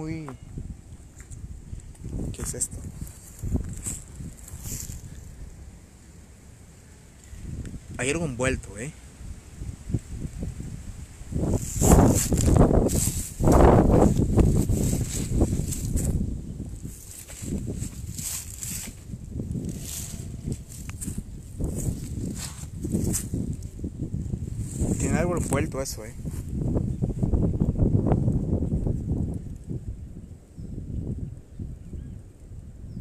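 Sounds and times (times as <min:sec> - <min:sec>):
footsteps in dry leaves: 0:02.9 - 0:05.2, 0:11.5 - 0:16.2, 0:16.8 - 0:23.5.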